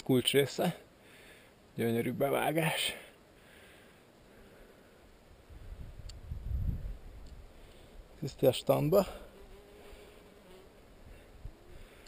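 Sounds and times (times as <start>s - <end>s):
flying insect buzzing: 8.9s - 12.0s.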